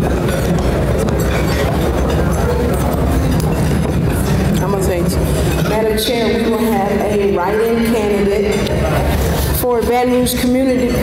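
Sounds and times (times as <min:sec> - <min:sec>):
low rumbling hall noise: 0:00.0 - 0:11.0
indistinct speech: 0:04.5 - 0:11.0.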